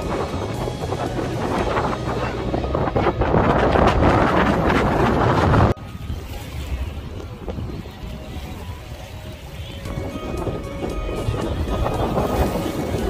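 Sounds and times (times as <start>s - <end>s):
background music: 0.0s - 6.6s, 7.6s - 13.0s
sea noise: 0.0s - 13.0s
wind buffeting microphone: 0.0s - 13.0s.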